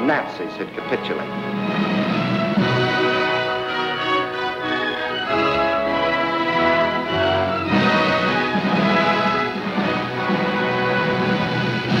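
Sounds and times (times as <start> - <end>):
orchestral music sustained chords: 0.0 - 12.0.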